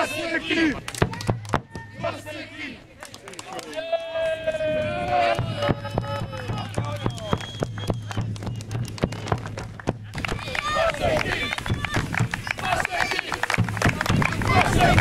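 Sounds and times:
crowd clapping: 0.8 - 1.8, 3.0 - 4.4, 5.1 - 15.0
voices calling out: 10.0 - 15.0.

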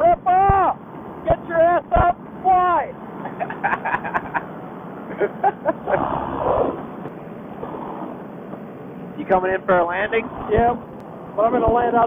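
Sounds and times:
background hiss: 0.0 - 12.0
men laughing over intercom: 3.1 - 7.0.

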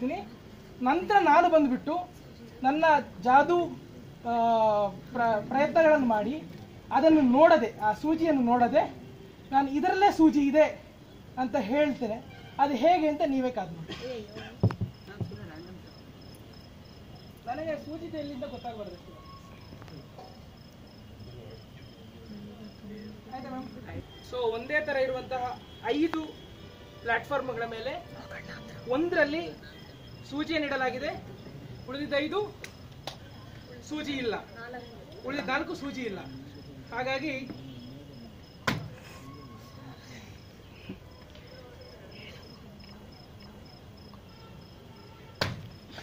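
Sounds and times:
insect chirping: 7.0 - 46.0
faint background voices: 18.5 - 24.4, 32.5 - 46.0.

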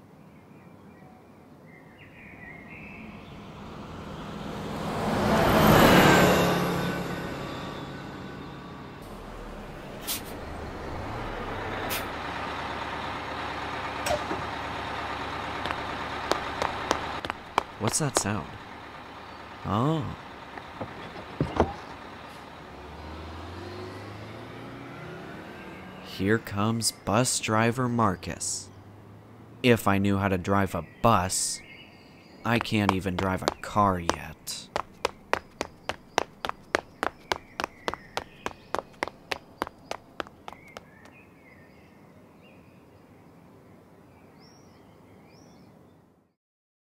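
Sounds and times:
bus engine hum: 2.4 - 27.4, 32.5 - 41.6
footsteps: 15.6 - 18.6, 32.5 - 40.9
bird chirps: 30.6 - 43.0.

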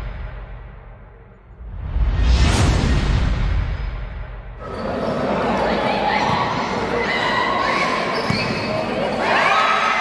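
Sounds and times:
shoes squeaking on court: 7.2 - 9.2.

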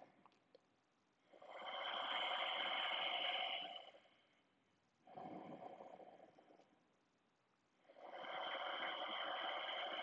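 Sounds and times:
deep throaty breathing: 1.3 - 4.2, 7.8 - 10.0.

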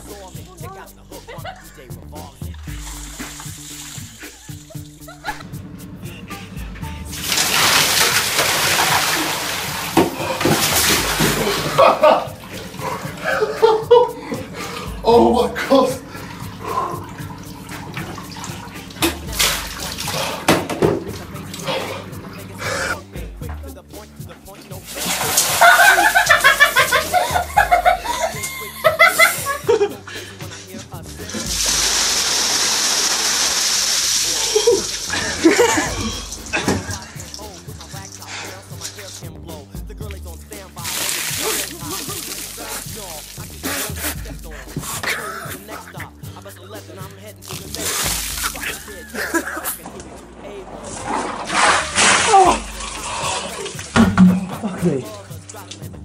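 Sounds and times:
background music: 0.0 - 56.0
water splashing into bathtub: 2.5 - 5.5, 6.7 - 23.8, 24.4 - 39.4, 40.0 - 46.2, 47.0 - 56.0.

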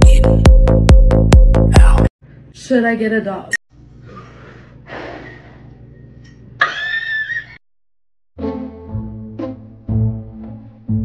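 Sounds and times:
low room hum: 2.2 - 7.6.

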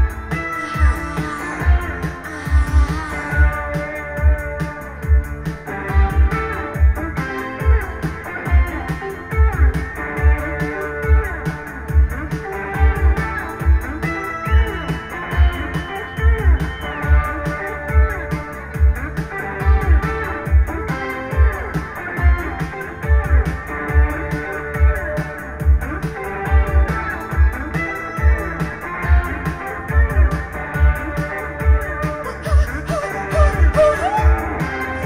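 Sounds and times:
electric guitar playing: 0.0 - 35.0
steady beat with high ticks: 0.0 - 35.0.

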